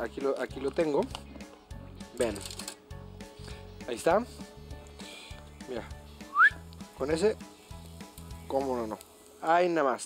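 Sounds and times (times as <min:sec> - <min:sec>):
background music: 0:00.0 - 0:10.0
short rising whistle: 0:06.3 - 0:06.6.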